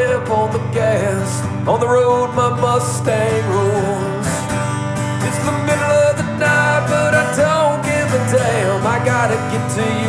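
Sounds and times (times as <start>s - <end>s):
man singing: 0.0s - 10.0s
strummed acoustic guitar: 0.0s - 10.0s.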